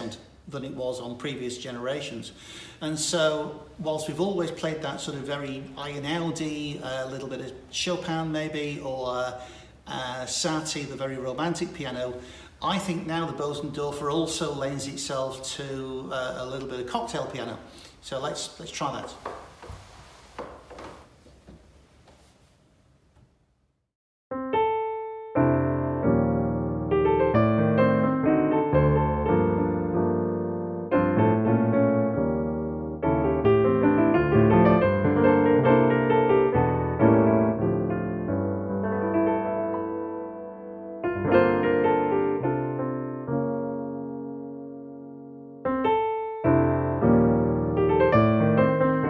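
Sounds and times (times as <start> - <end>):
person shifting on a bench: 19.1 - 22.4
piano chords ringing: 24.3 - 49.0.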